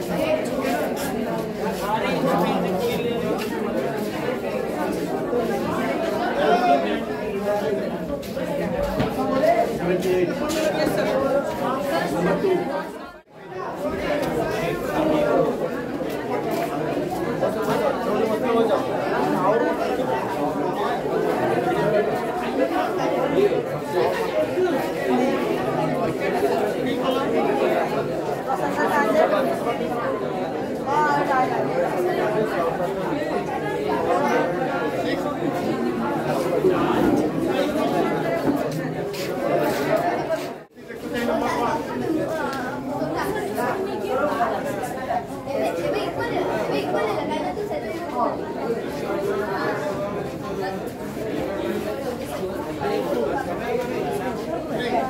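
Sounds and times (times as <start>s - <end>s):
boys chattering: 0.0s - 55.0s.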